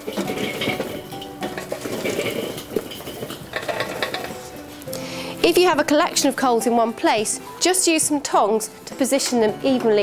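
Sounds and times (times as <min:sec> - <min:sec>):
charcoal clattering onto metal grate: 0:00.0 - 0:04.8.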